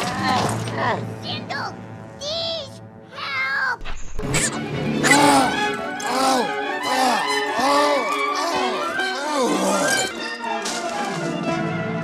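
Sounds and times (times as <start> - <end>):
high-pitched creature squeal: 5.0 - 10.1.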